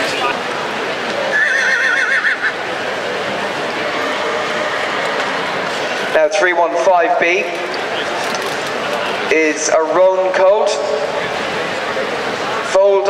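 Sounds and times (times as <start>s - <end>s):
crowd chatter: 0.0s - 13.0s
horse whinnying: 1.3s - 2.6s, 3.9s - 5.7s.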